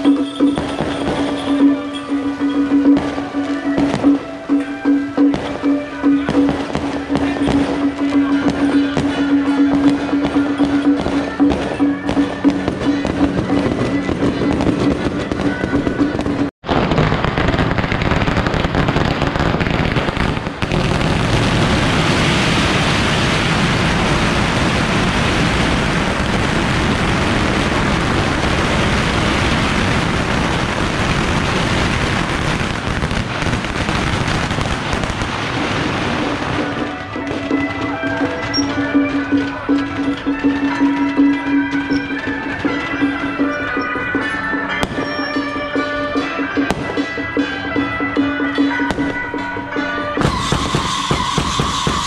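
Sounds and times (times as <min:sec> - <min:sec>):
held musical tone: 0:00.0 - 0:16.5, 0:36.6 - 0:50.4
firecrackers crackling: 0:00.0 - 0:52.0.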